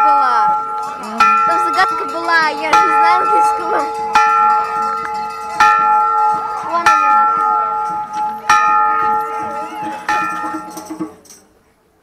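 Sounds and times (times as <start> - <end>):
metal bell struck: 0.0 - 11.4
faint murmur of voices: 6.2 - 11.5.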